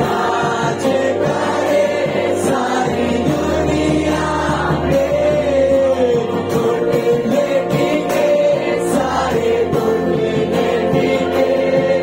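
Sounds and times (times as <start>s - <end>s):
instrumental accompaniment: 0.0s - 12.0s
voices singing worship song: 0.0s - 12.0s.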